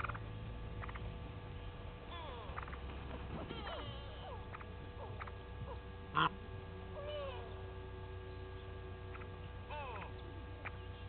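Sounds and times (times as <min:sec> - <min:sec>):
bird calling: 0:00.0 - 0:01.2, 0:02.1 - 0:11.0
faint bird chirps: 0:00.0 - 0:02.9, 0:03.6 - 0:11.0
steady electrical hum: 0:00.0 - 0:11.0.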